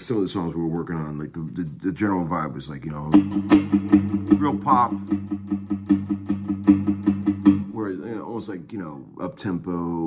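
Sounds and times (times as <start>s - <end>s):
electric guitar strumming chord: 3.2s - 7.7s.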